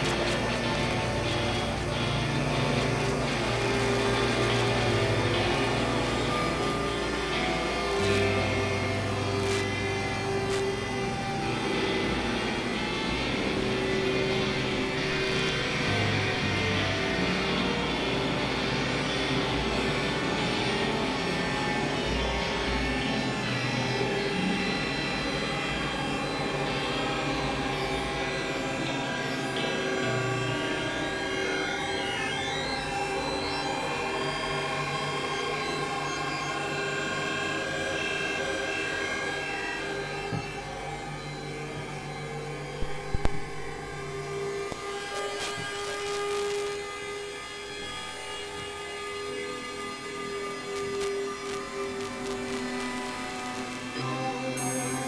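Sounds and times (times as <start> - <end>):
ambient synthesizer drones: 0.0 - 55.0.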